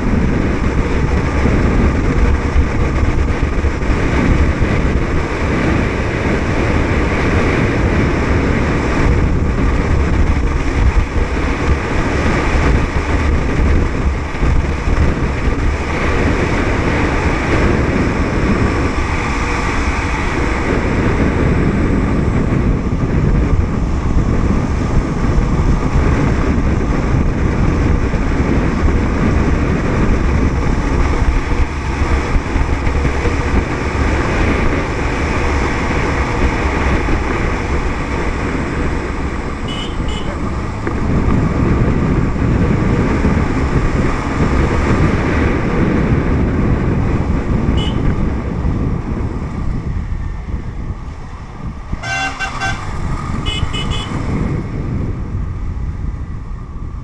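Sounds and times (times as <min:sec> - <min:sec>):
motorcycle engine running: 0:00.0 - 0:57.0
wind rushing over microphone: 0:00.0 - 0:57.0.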